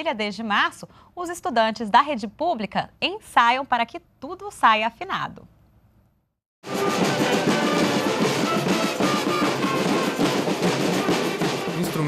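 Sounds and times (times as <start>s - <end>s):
marching band playing: 6.6s - 12.0s
snare and bass drums beating: 6.6s - 12.0s.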